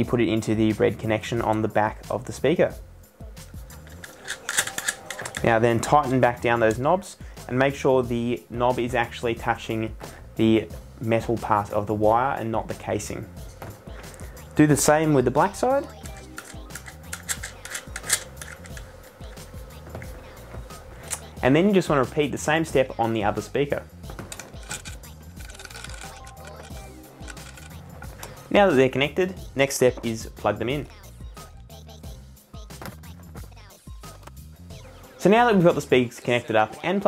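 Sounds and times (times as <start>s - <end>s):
quiet background music: 0.0s - 37.0s
light clicks and rattles: 15.9s - 19.4s, 24.2s - 28.4s.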